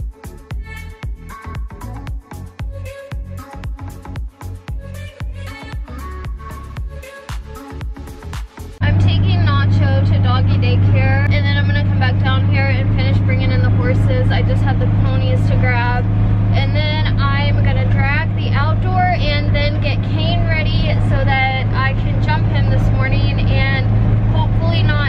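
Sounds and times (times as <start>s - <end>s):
background music: 0.0s - 25.0s
vehicle engine drone inside cab: 7.8s - 25.0s
woman talking: 8.8s - 25.0s.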